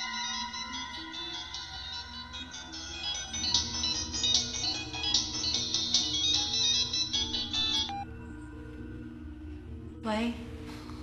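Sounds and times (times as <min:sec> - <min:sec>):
phone ringtone melody: 0:00.0 - 0:08.2.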